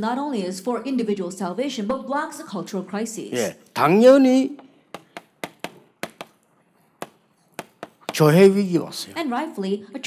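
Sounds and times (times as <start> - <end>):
chalk tapping on chalkboard: 4.9 - 6.4, 7.0 - 8.4.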